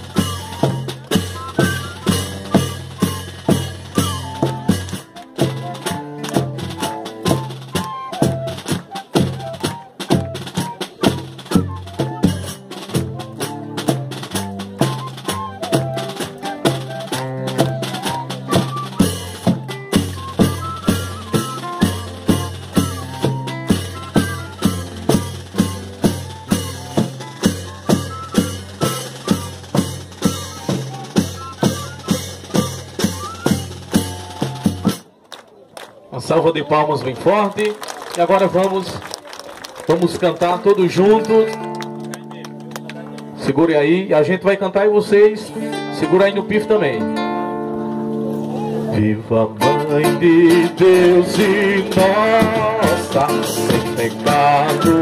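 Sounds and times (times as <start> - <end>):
fifes playing melody: 0.0 - 35.0, 49.6 - 55.0
drums: 0.0 - 35.5, 45.0 - 55.0.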